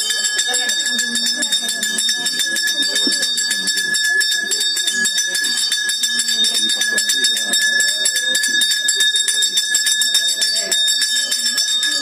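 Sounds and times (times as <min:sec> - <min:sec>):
crowd murmur: 0:00.0 - 0:12.0
temple bell ringing rapidly: 0:00.0 - 0:12.0.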